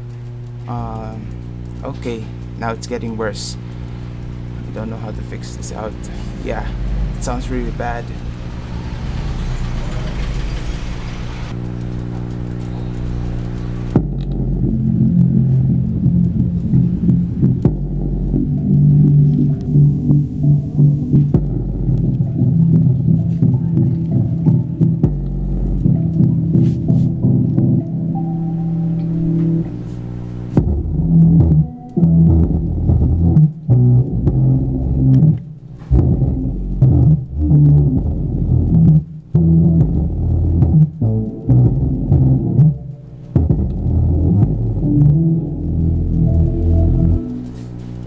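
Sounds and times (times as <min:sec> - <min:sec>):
loud mains hum: 0:00.0 - 0:48.0
bass-heavy music from subwoofer: 0:04.4 - 0:08.8, 0:09.7 - 0:48.0.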